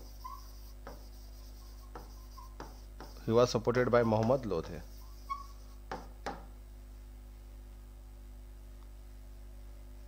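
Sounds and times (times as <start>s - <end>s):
chalk scraping on blackboard: 0.0s - 6.1s
steady low hum: 0.0s - 10.0s.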